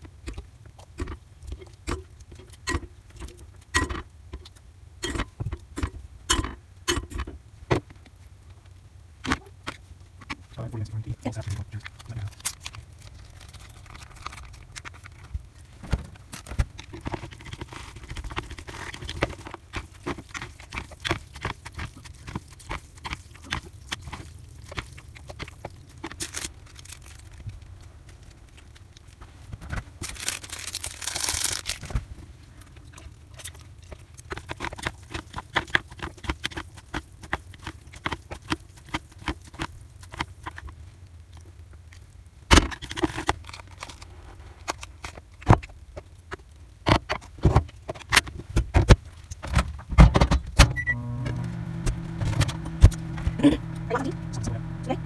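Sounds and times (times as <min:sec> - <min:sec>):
seasoning packet rustling: 0:11.5 - 0:32.0.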